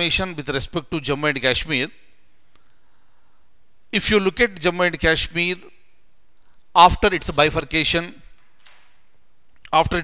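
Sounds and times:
low room hiss: 0.0s - 10.0s
man's voice: 9.7s - 10.0s.

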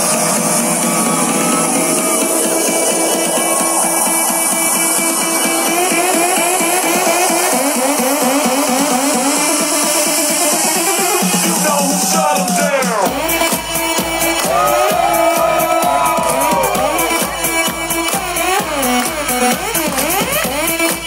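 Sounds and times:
electronic house music: 0.0s - 21.0s.

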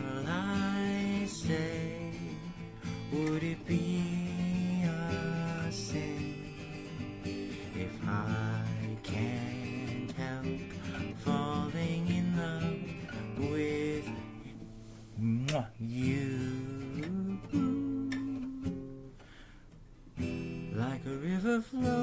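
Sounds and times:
man singing slow ballad: 0.0s - 14.6s, 15.2s - 19.2s, 20.6s - 22.0s
nylon-string guitar strummed slowly: 0.0s - 19.5s, 20.2s - 22.0s.

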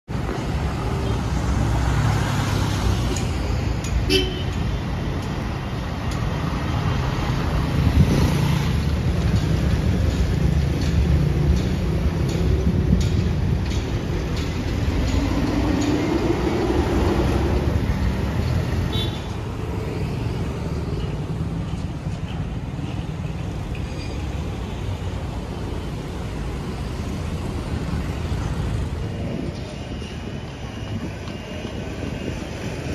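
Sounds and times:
road vehicle rumble: 0.0s - 32.9s
street traffic: 0.0s - 32.9s.

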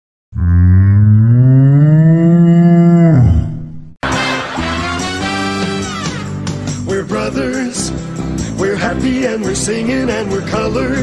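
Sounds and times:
cow mooing: 0.4s - 3.4s.

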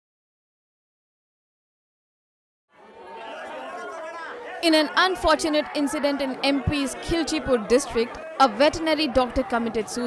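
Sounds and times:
crowd babble: 2.7s - 10.0s.

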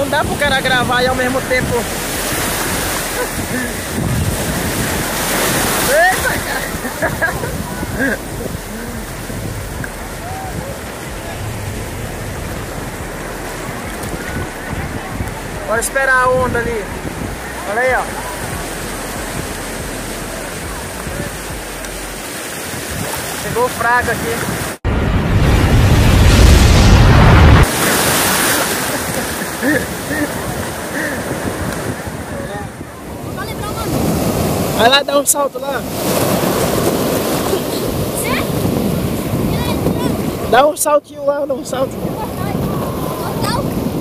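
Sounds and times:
sea waves and surf: 0.0s - 44.0s
wind on microphone: 0.0s - 44.0s.

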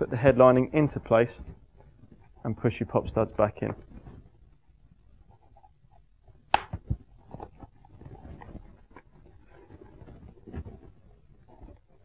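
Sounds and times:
fabric rustling: 3.8s - 12.0s.

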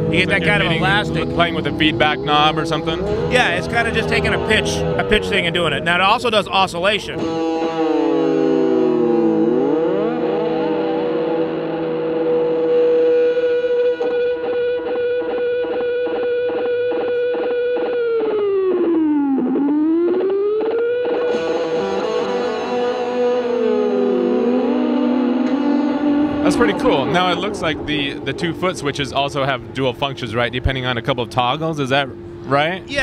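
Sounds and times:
delay pedal oscillating tone: 7.1s - 29.6s.

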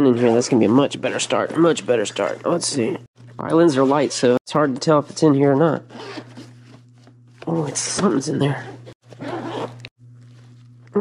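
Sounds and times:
low steady hum: 0.0s - 11.0s
zipper being pulled open: 9.0s - 9.9s.

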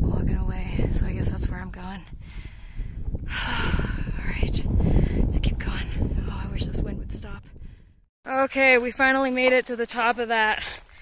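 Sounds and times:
wind buffeting microphone: 0.0s - 8.1s.

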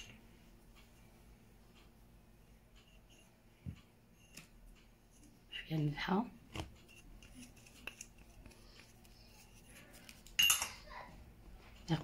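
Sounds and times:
utensil clinking against dish: 10.4s - 10.8s.

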